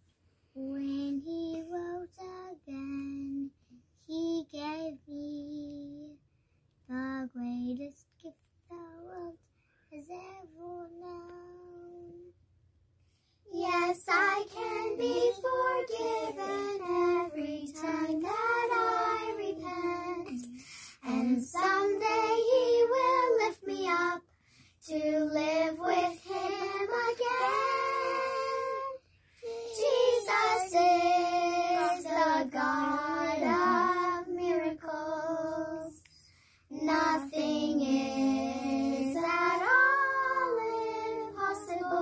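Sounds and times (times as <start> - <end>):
children singing unaccompanied: 13.5 - 24.2, 24.8 - 36.0, 36.8 - 42.0.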